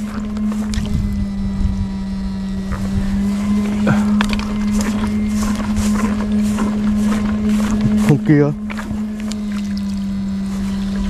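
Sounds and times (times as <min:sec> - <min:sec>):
footsteps in grass: 0:00.0 - 0:01.7, 0:02.5 - 0:11.0
electric shocker humming: 0:00.0 - 0:11.0.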